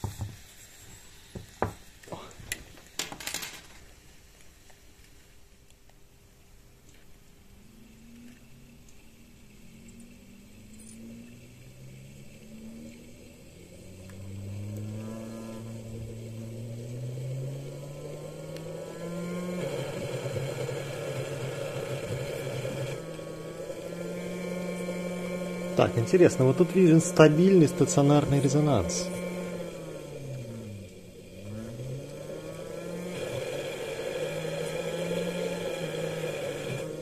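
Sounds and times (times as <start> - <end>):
stepper motor whining: 7.7 - 37.0.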